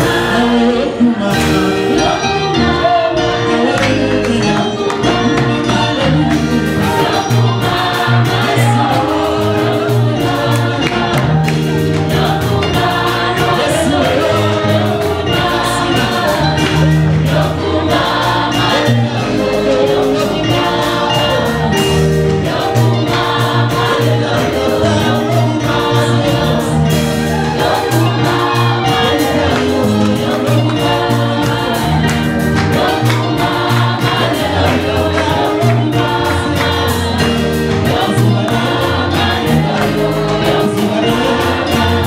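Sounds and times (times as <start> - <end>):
group singing gospel music: 0.0 - 42.0
electronic keyboard with steady beat: 1.3 - 42.0.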